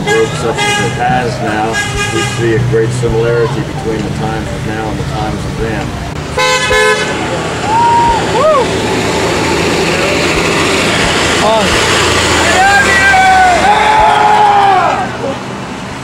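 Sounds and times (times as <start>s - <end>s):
passing road traffic: 0.0s - 16.0s
people shouting and whooping: 7.6s - 10.4s, 12.4s - 15.4s.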